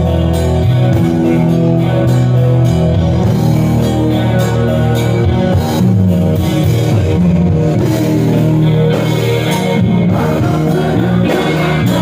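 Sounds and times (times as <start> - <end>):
electric guitar melody: 0.0 - 12.0
live rock band playing: 0.0 - 12.0.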